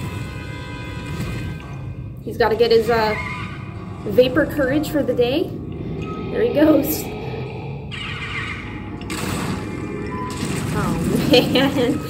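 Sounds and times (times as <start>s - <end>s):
film soundtrack music: 0.0s - 12.0s
noisy sound effect: 3.2s - 12.0s.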